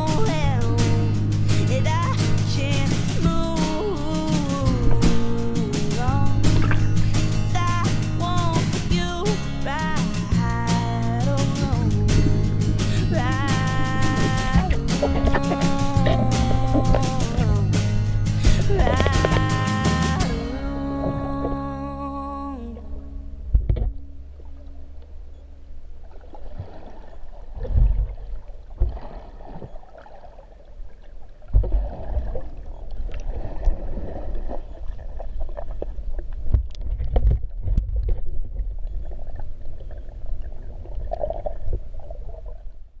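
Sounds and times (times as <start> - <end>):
low thumps: 0.0 - 26.0
water sloshing and gurgling: 0.0 - 43.0.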